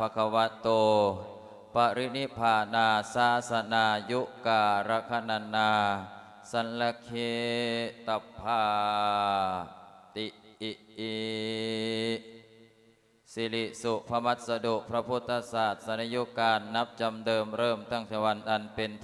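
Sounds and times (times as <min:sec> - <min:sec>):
man chanting through a microphone: 0:00.0 - 0:12.4, 0:13.3 - 0:19.0.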